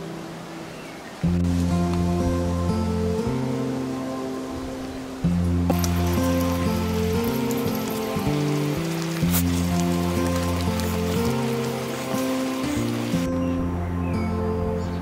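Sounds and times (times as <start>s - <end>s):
music of sustained low notes: 0.0s - 15.0s
steady hiss: 5.7s - 13.3s.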